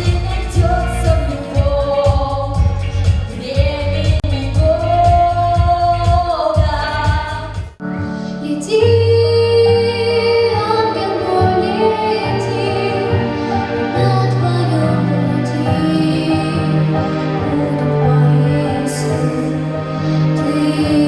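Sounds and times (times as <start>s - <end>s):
girl singing: 0.0s - 7.6s, 8.4s - 13.3s, 13.9s - 19.6s, 20.3s - 21.0s
woman singing into microphone: 0.0s - 7.6s, 8.2s - 21.0s
recorded accompaniment with beat: 0.0s - 8.2s.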